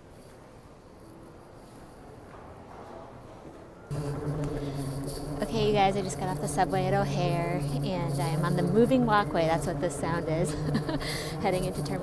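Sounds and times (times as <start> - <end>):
faint terminal background: 0.0 - 12.0
moving walkway humming: 3.9 - 12.0
woman speaking: 5.4 - 12.0.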